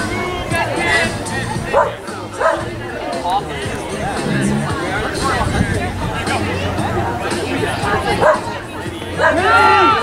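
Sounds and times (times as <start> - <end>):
background chatter: 0.0 - 10.0
dog barking: 1.7 - 2.7, 8.2 - 8.5, 9.2 - 9.5.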